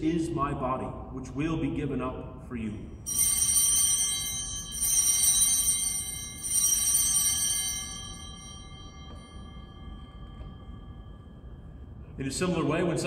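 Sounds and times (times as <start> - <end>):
altar bells ringing: 2.8 - 13.0.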